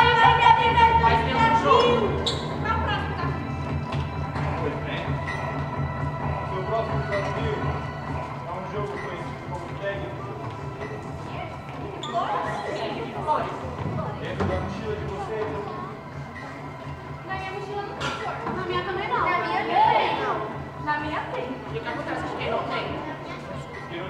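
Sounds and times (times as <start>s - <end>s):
soft background music: 0.0s - 24.0s
children's voices: 17.2s - 20.6s.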